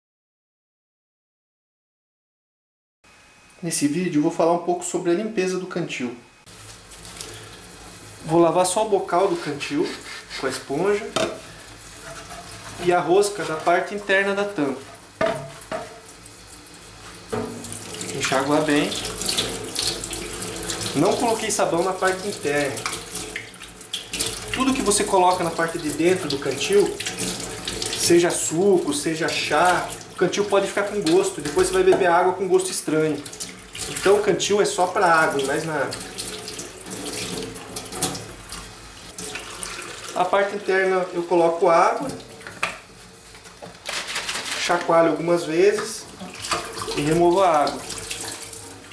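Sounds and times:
water running from a tap: 0:06.5 - 0:44.0, 0:44.6 - 0:48.9.

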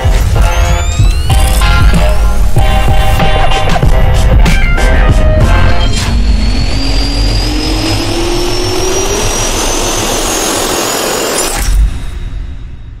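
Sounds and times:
jet turbine whine and roar: 0:00.0 - 0:12.5
sharp hit: 0:00.0 - 0:13.0.

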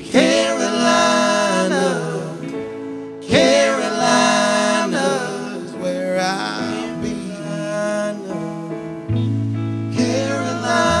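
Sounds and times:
men singing: 0:00.0 - 0:08.8, 0:09.9 - 0:11.0
electric guitars: 0:08.4 - 0:11.0.

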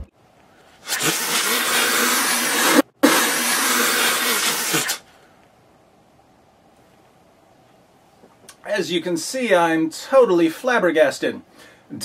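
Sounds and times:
loud hiss: 0:00.8 - 0:05.1.

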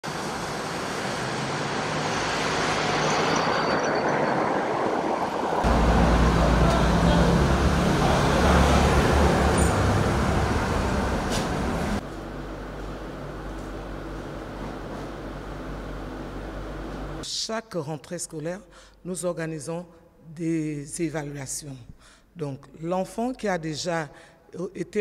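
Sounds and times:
deep traffic rumble: 0:00.0 - 0:03.4, 0:04.7 - 0:17.2
road traffic rush: 0:00.0 - 0:13.1.

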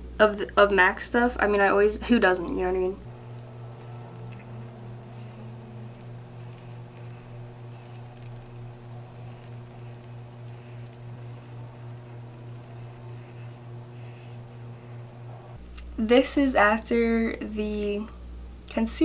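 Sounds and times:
steady low hum: 0:00.0 - 0:19.0
makeup sponge patting face: 0:03.0 - 0:14.9.

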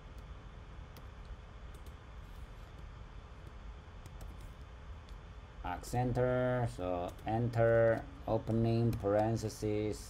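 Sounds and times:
low steady hum: 0:00.0 - 0:10.0
man speaking: 0:05.6 - 0:10.0.

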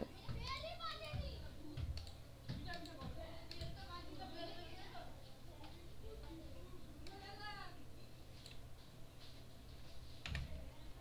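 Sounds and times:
children talking and playing: 0:00.0 - 0:11.0.

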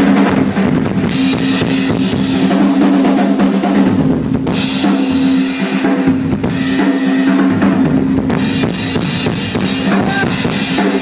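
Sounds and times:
rock drum kit playing: 0:00.0 - 0:11.0.

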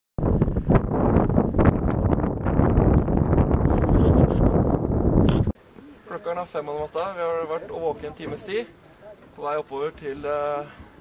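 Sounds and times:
wind buffeting microphone: 0:00.2 - 0:05.6.

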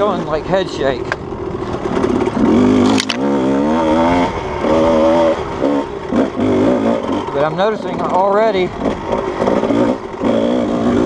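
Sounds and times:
dirt bike engine revving: 0:01.2 - 0:11.0.

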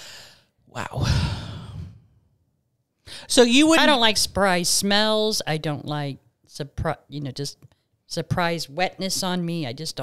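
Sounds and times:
person sighing: 0:00.8 - 0:02.1
breath thumping on microphone: 0:01.0 - 0:02.1.

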